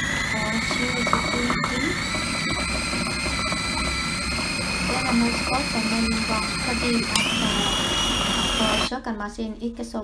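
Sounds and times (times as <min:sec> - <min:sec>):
food processor motor whining: 0:00.0 - 0:08.9.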